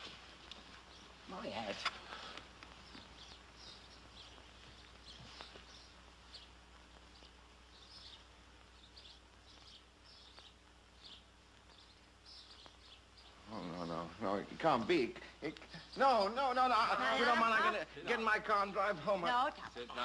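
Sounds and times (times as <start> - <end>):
film soundtrack hiss and hum: 0.0 - 20.0
faint high bird chirps: 2.8 - 13.6.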